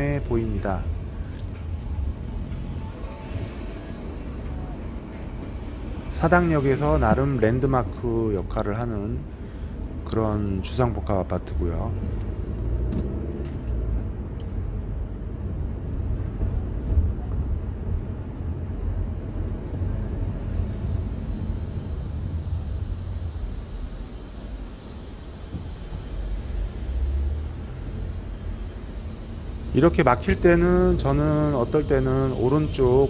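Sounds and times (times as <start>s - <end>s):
car engine low rumble: 0.0s - 33.0s
road noise inside car: 0.0s - 33.0s.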